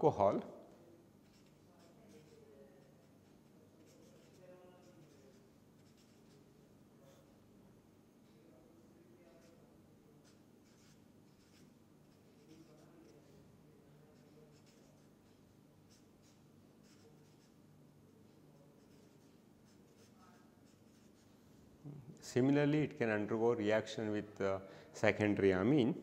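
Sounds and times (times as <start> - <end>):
marker scratching on paper: 1.2 - 7.4, 9.2 - 17.6, 18.2 - 21.4.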